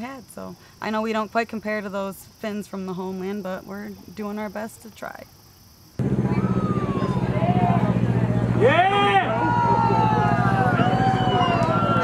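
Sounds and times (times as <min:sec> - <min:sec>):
steady low hum: 0:06.0 - 0:12.0
people whooping and hollering: 0:06.2 - 0:12.0.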